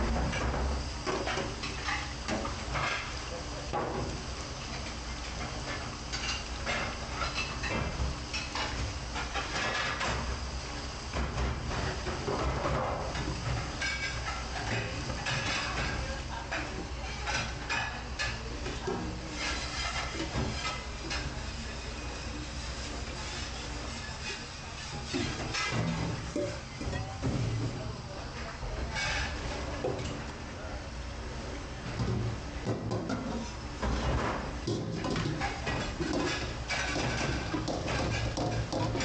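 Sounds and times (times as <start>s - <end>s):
metal pans clattering: 32.9s - 39.0s.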